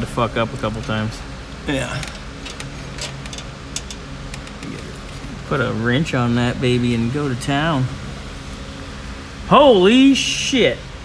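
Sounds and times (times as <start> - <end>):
steady low hum: 0.0 - 11.0
brake cable clicks: 2.0 - 4.8.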